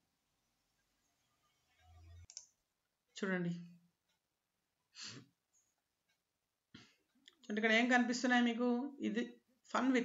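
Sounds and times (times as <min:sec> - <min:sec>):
mouse click: 0:02.2 - 0:02.6.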